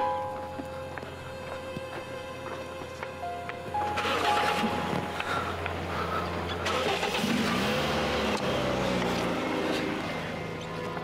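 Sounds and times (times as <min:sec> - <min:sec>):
car engine starting and revving: 0:03.8 - 0:10.9.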